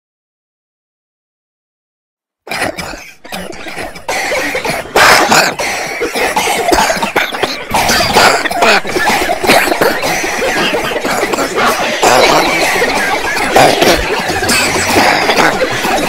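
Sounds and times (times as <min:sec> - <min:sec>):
person coughing hard: 0:02.5 - 0:16.0.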